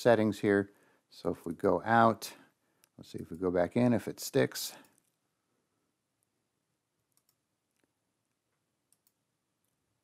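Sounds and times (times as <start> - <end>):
computer mouse clicks: 7.0 - 7.9, 8.9 - 9.8.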